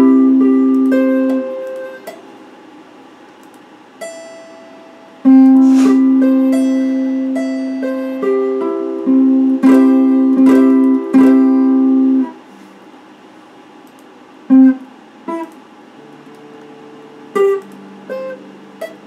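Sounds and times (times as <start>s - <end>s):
electric guitar chords: 0.0s - 2.2s, 4.0s - 12.4s, 14.5s - 19.0s
plucked guitar notes: 0.0s - 2.2s, 4.0s - 12.4s, 14.5s - 19.0s.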